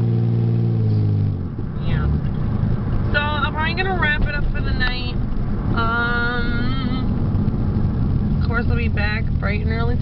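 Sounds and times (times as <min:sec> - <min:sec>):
low rumble: 0:00.8 - 0:10.0.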